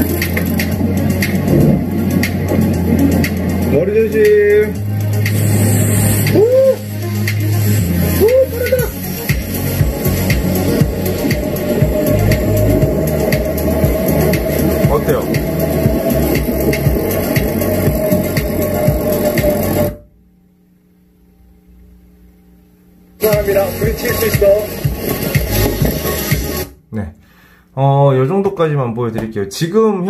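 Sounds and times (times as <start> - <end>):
music with heavy bass beat: 0.0 - 20.0, 23.2 - 26.8
faint hum: 0.0 - 24.1.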